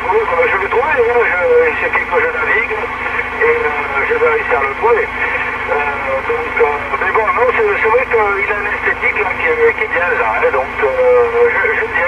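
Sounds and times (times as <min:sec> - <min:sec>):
low hum: 0:00.0 - 0:12.0
man talking over radio: 0:00.0 - 0:12.0.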